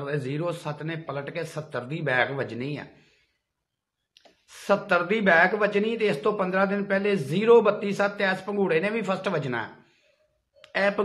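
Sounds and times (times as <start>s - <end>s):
man speaking: 0.0s - 3.0s, 4.4s - 9.9s, 10.5s - 11.0s
man breathing: 3.0s - 3.6s, 9.8s - 10.6s
faint click: 4.1s - 4.4s.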